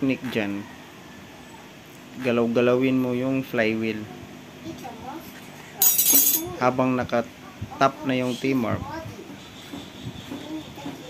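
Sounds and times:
metallic clink and jingle: 5.8s - 6.5s.

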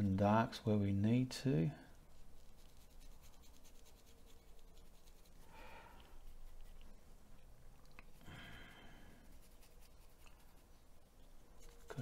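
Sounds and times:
soft rustle: 1.8s - 12.0s
paintbrush scratching on canvas: 2.0s - 7.2s, 9.1s - 12.0s.

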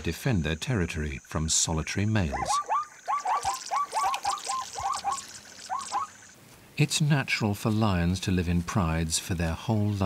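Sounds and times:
small birds chirping: 2.3s - 6.4s.

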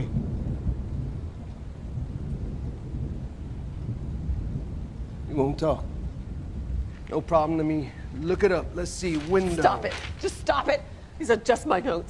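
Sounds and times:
low steady rumble: 0.0s - 11.4s.

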